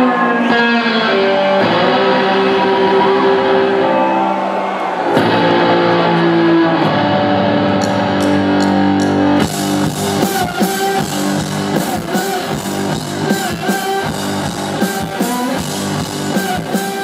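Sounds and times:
distorted bass guitar riff: 0:00.0 - 0:04.0, 0:05.2 - 0:17.0.

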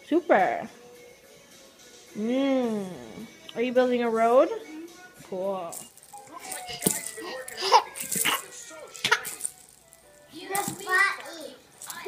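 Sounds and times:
plastic toy rattling: 0:05.7 - 0:11.0, 0:11.8 - 0:12.0
baby laughing: 0:06.2 - 0:09.4.

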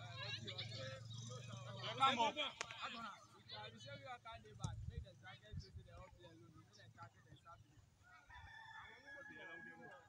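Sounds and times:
distant rooster crowing: 0:08.1 - 0:10.0.

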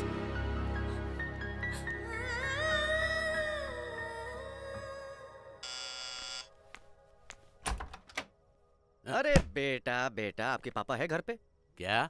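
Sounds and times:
electric doorbell buzzing: 0:05.6 - 0:06.5
door latch clicks: 0:07.6 - 0:08.3.

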